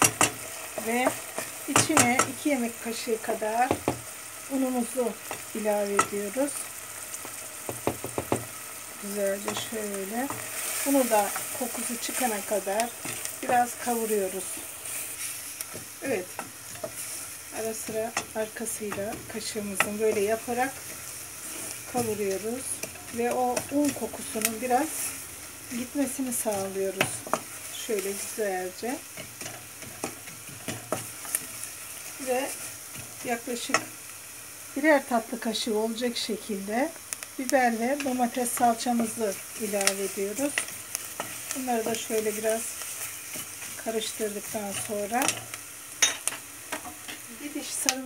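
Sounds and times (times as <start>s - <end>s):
sharp pops of frying oil: 0.0s - 2.4s, 3.6s - 4.1s, 7.2s - 13.8s, 26.0s - 31.7s, 36.9s - 39.2s, 44.8s - 48.0s
onions sizzling in a pot: 0.0s - 48.0s
wooden spoon scraping pot: 9.4s - 25.2s.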